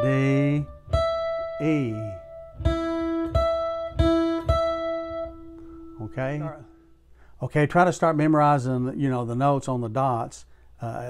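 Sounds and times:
acoustic guitar single notes: 0:00.0 - 0:07.3.

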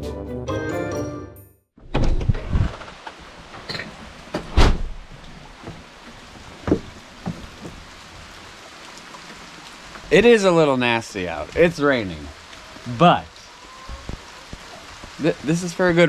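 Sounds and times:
knocks and thumps: 0:01.8 - 0:07.9
steady rain falling: 0:02.6 - 0:16.0.

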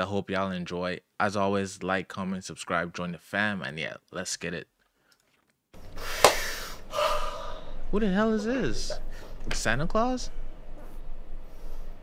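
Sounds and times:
man gasping: 0:06.0 - 0:07.8.

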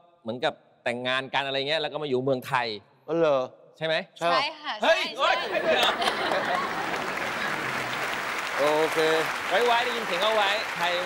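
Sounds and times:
voices: 0:04.2 - 0:11.0
studio audience applauding: 0:05.4 - 0:11.0.

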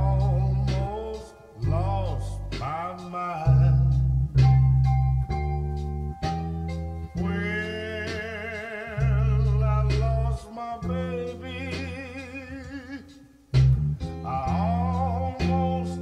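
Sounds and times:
person singing: 0:00.0 - 0:04.9, 0:07.1 - 0:13.4, 0:14.0 - 0:16.0
electric bass low notes: 0:00.0 - 0:16.0.

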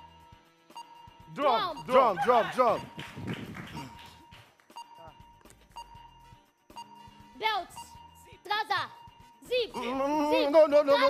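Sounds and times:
voices in a studio: 0:01.1 - 0:06.2, 0:06.8 - 0:11.0
people shouting guesses: 0:01.4 - 0:02.8, 0:08.5 - 0:11.0.

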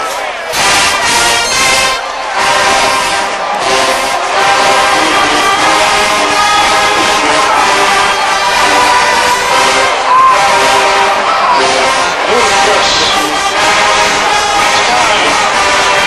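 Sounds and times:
marching band playing: 0:00.0 - 0:16.0
stadium crowd cheering: 0:00.0 - 0:16.0.

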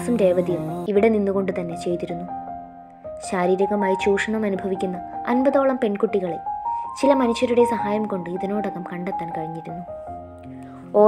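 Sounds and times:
woman narrating: 0:00.0 - 0:02.3, 0:03.2 - 0:09.9
soft music with bell-like notes: 0:00.0 - 0:11.0.

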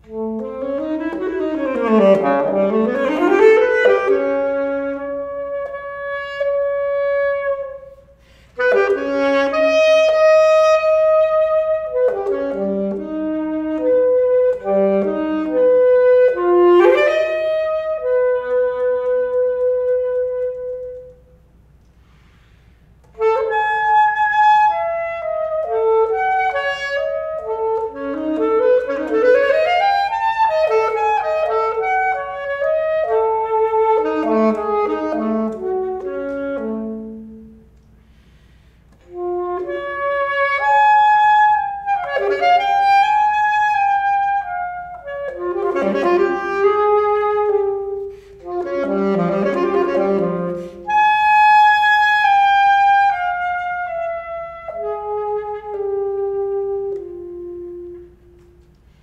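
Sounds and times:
alto saxophone playing: 0:00.0 - 0:59.0.

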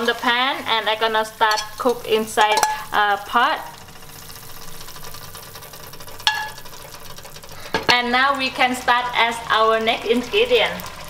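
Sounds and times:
faint sizzling in a pot: 0:00.0 - 0:11.0.

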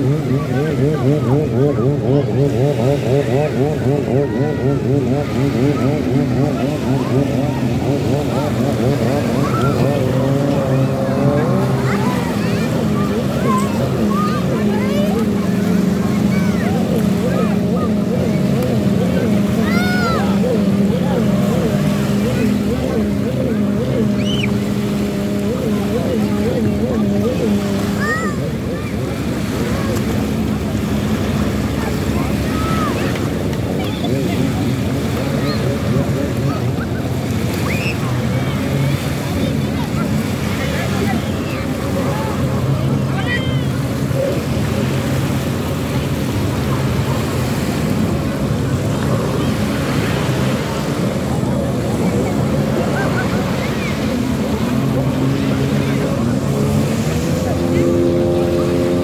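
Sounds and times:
jet ski engines droning: 0:00.0 - 0:59.0
surf washing at shoreline: 0:00.0 - 0:59.0.

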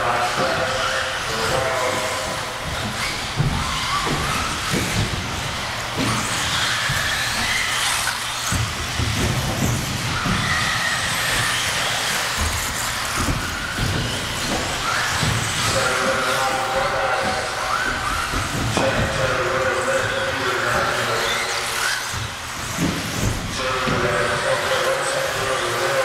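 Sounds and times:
electric motors whining: 0:00.0 - 0:26.0
knocks: 0:00.4 - 0:20.9, 0:21.7 - 0:24.4.

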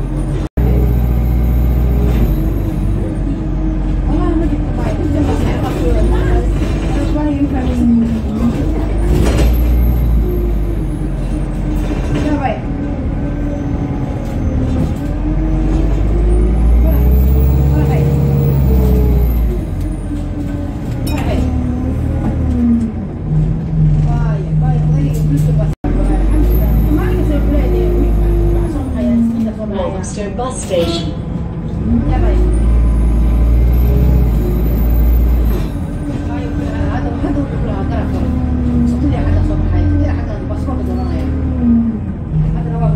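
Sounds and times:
bus diesel engine revving: 0:00.0 - 0:29.6, 0:31.3 - 0:42.9.

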